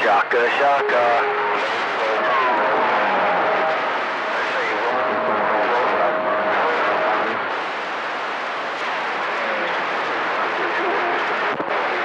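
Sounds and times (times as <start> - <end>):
radio static hiss: 0.0 - 12.0.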